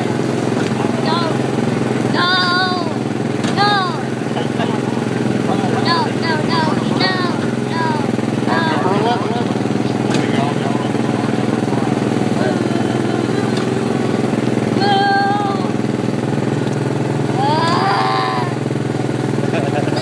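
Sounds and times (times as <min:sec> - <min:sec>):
go-kart engine running: 0:00.0 - 0:20.0
short high wordless voice sounds: 0:00.8 - 0:01.4, 0:02.1 - 0:04.2, 0:05.6 - 0:09.3, 0:12.4 - 0:14.1, 0:14.8 - 0:15.8, 0:17.4 - 0:18.6.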